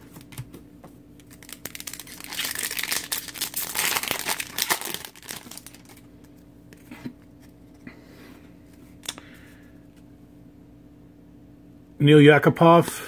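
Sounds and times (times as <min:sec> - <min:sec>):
foil wrapper crinkling: 0:01.2 - 0:06.1.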